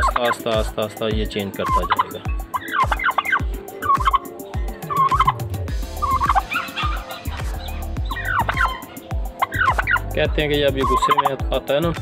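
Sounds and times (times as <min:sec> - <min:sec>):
turkey gobbling: 0:00.0 - 0:00.8, 0:01.4 - 0:11.4.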